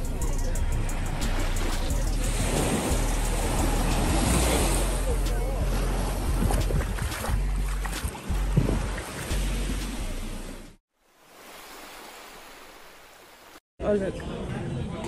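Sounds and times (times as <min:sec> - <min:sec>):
people's voices: 0:00.0 - 0:07.7
small waves washing onto sand: 0:01.2 - 0:10.4, 0:11.2 - 0:13.6
wind rumbling on microphone: 0:01.8 - 0:10.5.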